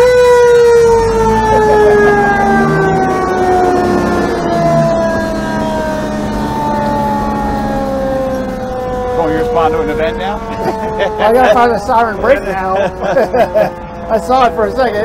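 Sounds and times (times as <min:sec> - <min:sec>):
mechanical siren wailing: 0:00.0 - 0:15.0
truck engine running: 0:00.0 - 0:15.0.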